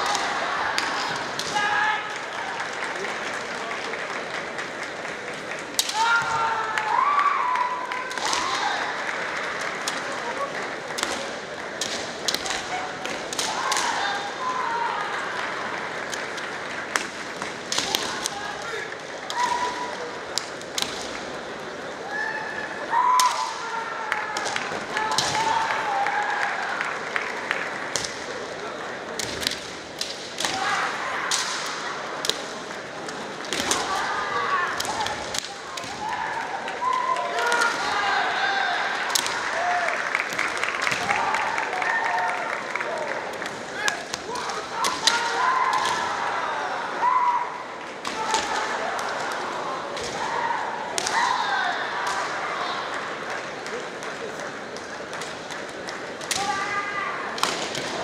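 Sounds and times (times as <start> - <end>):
bamboo swords clacking: 0.0 - 2.2, 5.7 - 6.4, 10.9 - 14.6, 16.0 - 21.5, 29.1 - 36.3, 43.4 - 46.2, 48.0 - 52.4, 54.7 - 58.0
people shouting: 0.0 - 2.7, 5.8 - 9.1, 12.3 - 15.7, 17.7 - 20.1, 22.0 - 26.8, 30.4 - 32.4, 33.5 - 53.0, 56.3 - 58.0.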